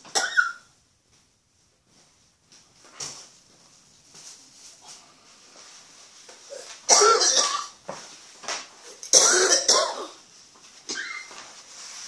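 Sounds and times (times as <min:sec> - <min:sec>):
man coughing: 0:06.5 - 0:07.8, 0:09.1 - 0:10.2.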